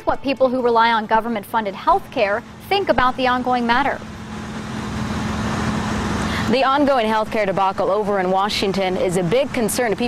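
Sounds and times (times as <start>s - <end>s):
low hum: 0.6s - 10.0s.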